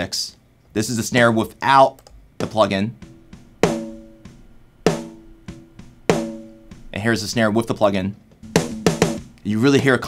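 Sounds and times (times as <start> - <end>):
ringing snare drum hits: 2.9 - 9.6.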